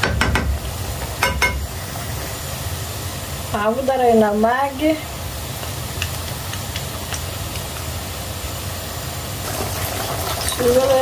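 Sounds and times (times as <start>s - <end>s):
food frying in a pan: 0.0s - 11.0s
low mechanical hum: 0.0s - 11.0s.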